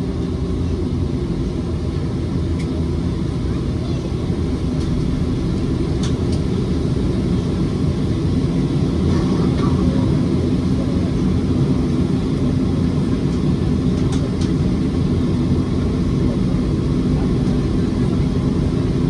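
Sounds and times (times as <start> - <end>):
jet engines low rumble: 0.0 - 19.0.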